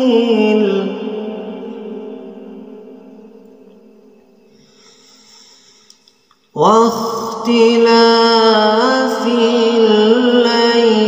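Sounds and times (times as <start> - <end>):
man reciting in solo voice: 0.0 - 2.7, 6.5 - 11.0.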